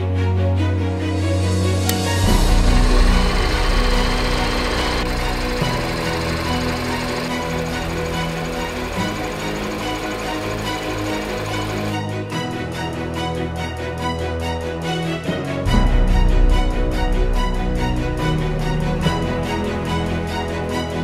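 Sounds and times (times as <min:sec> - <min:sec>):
background music: 0:00.0 - 0:21.0
film projector clatter: 0:01.9 - 0:12.1.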